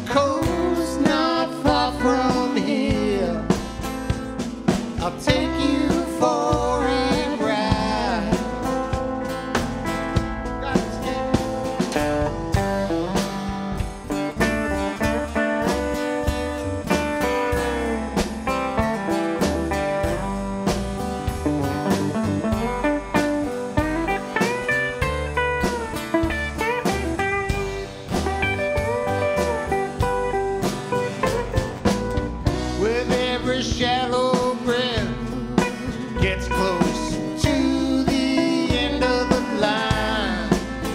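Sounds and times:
live country-blues band playing: 0.0 - 40.9
lead guitar bending notes: 0.1 - 40.9.

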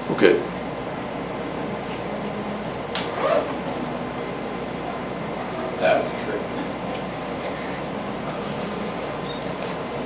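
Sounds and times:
room noise: 0.0 - 10.0.

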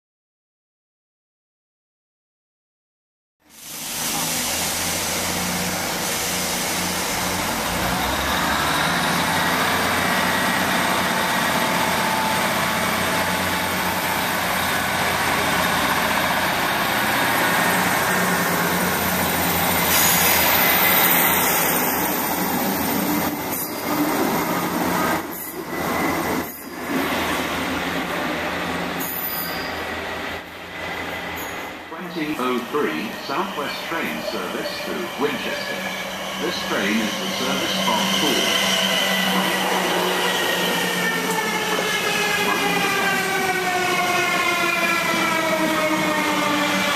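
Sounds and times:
diesel train engine humming: 3.5 - 29.0, 29.6 - 46.9
electric train moving: 3.5 - 46.9.

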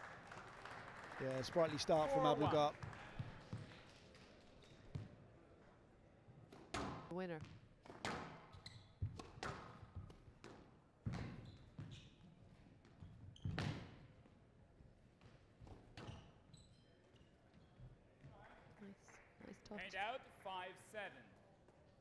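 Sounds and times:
squash ball hitting rackets and walls: 6.5 - 12.0, 12.6 - 14.1.

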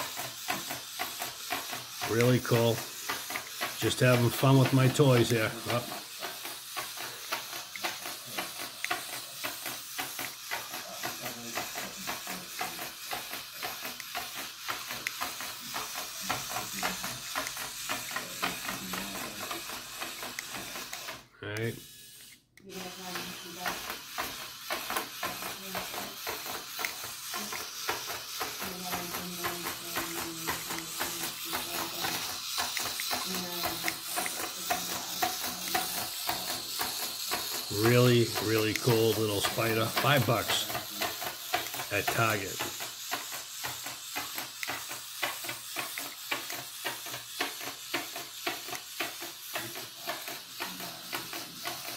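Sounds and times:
small motor whirring: 0.0 - 51.9.

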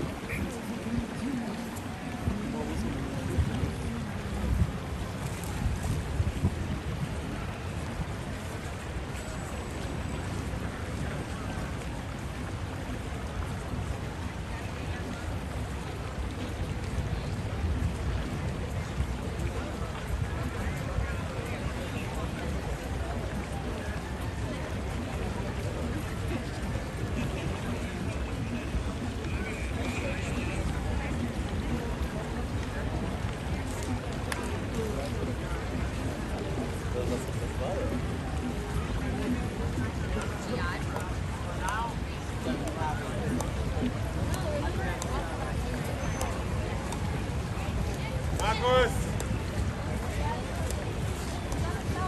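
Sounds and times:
people chattering: 0.0 - 52.0
wind buffeting microphone: 0.0 - 52.0.

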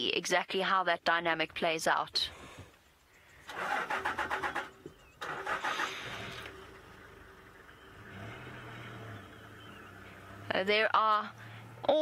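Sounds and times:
engine cranking and idling: 2.8 - 12.0.

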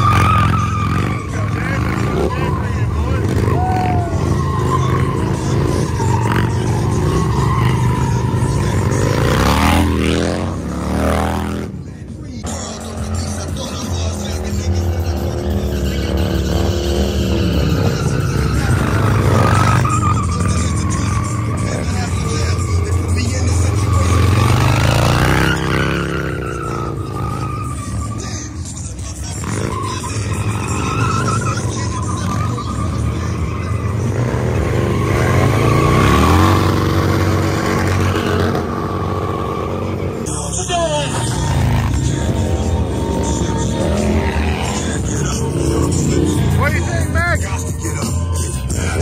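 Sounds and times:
motorcycle engine revving: 0.0 - 49.0.

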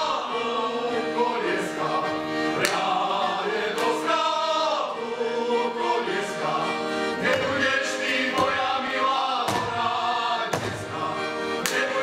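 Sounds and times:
group of men singing: 0.0 - 12.0.

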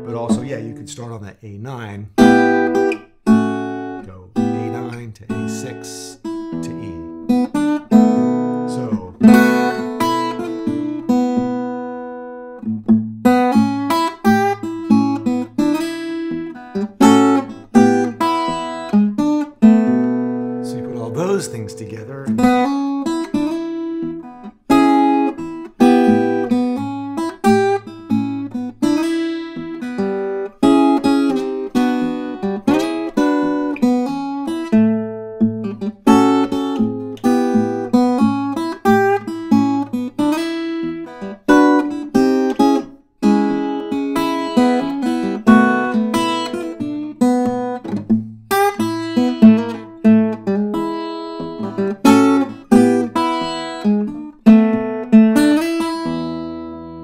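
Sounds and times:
acoustic blues guitar: 0.0 - 57.0.

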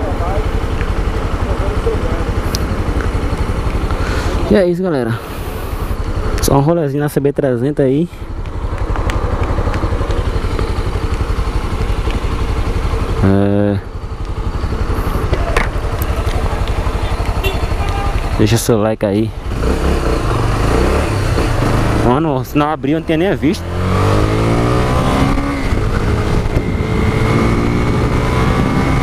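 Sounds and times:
motorcycle engine idling: 0.0 - 7.0, 7.8 - 23.5
street traffic noise: 0.0 - 29.0.

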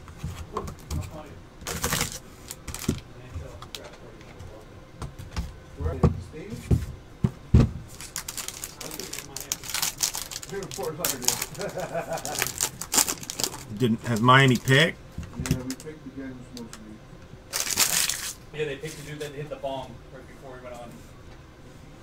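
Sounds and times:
foil pack crinkling: 1.6 - 3.0, 7.9 - 14.9, 17.5 - 18.4.

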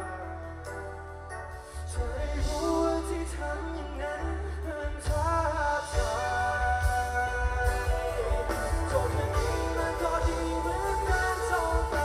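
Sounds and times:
bass guitar: 0.0 - 12.0
keyboard chords: 0.0 - 12.0
steady drum beat: 2.1 - 3.2, 4.9 - 12.0.

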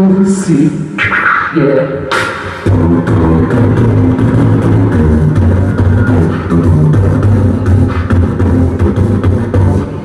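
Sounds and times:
man beatboxing: 0.0 - 10.0.

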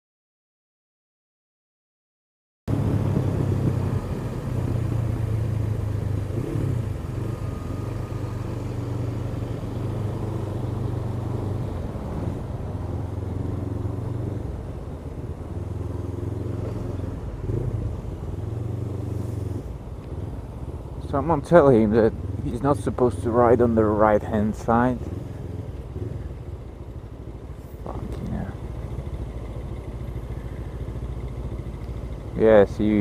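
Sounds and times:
motorcycle engine running: 2.7 - 33.0
road and wind noise: 2.7 - 33.0.

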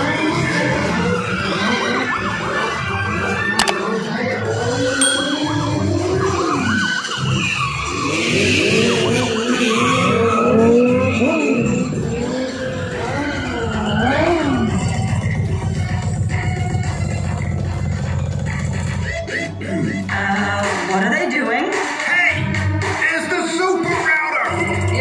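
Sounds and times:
police sirens wailing: 7.6 - 15.2
engine at high revs: 7.9 - 14.7.

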